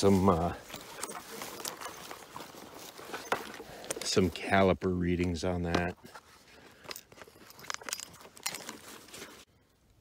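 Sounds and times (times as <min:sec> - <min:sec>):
rustling: 0:00.0 - 0:10.0.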